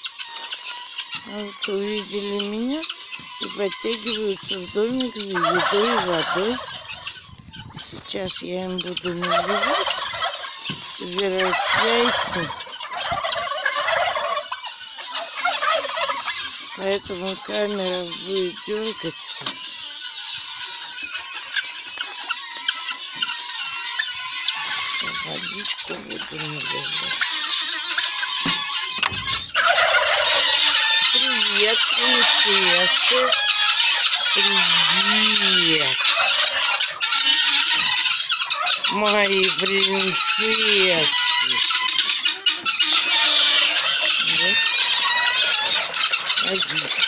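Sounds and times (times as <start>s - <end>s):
guineafowl calling: 0.0s - 47.0s.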